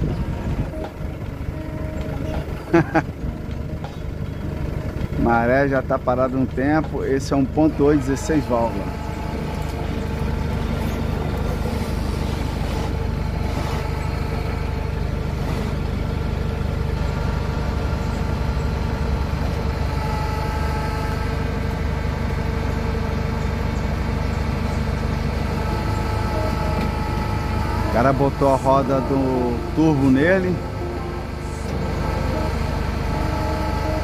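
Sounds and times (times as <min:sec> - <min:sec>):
truck engine driving winch: 0:00.0 - 0:34.0.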